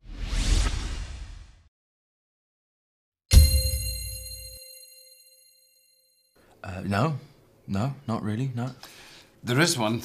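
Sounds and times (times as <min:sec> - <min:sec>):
whoosh with rising sweep: 0:00.0 - 0:01.7.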